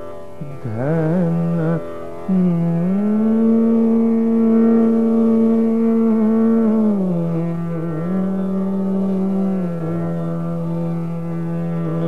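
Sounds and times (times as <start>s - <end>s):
man singing long steady note: 0.0s - 12.0s.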